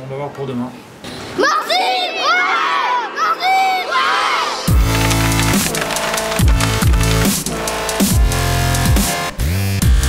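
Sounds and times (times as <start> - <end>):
children shouting and cheering: 1.4 - 7.2.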